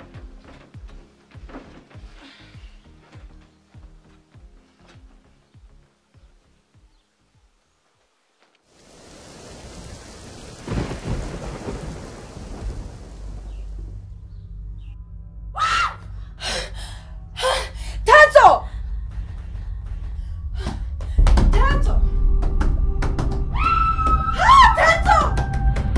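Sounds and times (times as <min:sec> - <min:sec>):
rain hissing: 0:07.3 - 0:14.3
thunder rumbling: 0:08.9 - 0:14.8, 0:20.2 - 0:25.9
low hum: 0:12.6 - 0:25.9.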